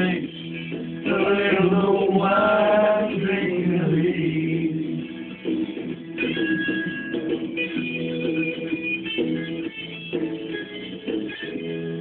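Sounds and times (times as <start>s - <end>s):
man singing slowly: 1.0s - 5.0s.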